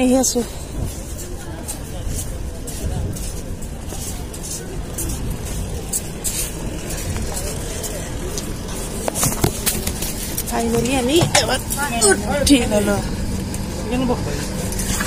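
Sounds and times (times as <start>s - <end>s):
indistinct voices: 0.0s - 15.0s
train low rumble: 0.0s - 15.0s
microphone handling clicks and rustles: 0.7s - 11.4s.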